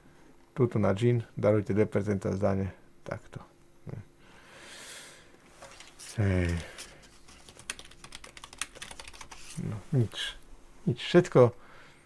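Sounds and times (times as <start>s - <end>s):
typing on computer keyboard: 6.8s - 9.4s.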